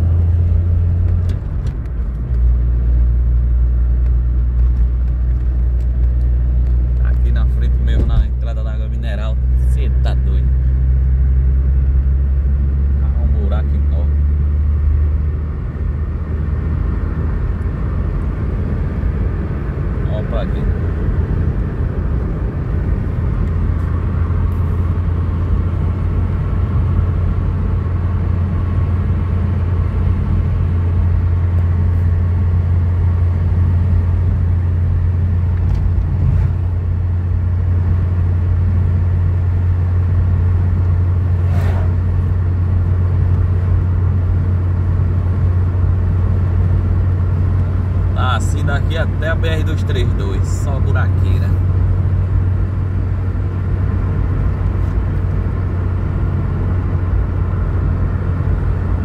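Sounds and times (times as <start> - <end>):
car engine and road noise: 0.0 - 59.0.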